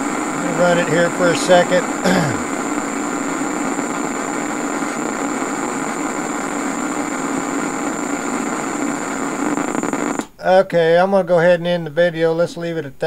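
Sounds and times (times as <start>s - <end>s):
electric coil hissing buzz: 0.0s - 10.3s.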